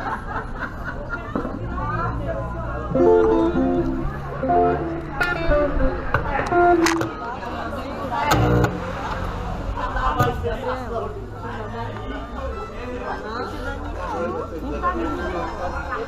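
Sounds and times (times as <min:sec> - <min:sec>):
people talking: 0:00.0 - 0:16.0
guitar playing: 0:02.9 - 0:07.4, 0:08.2 - 0:09.7.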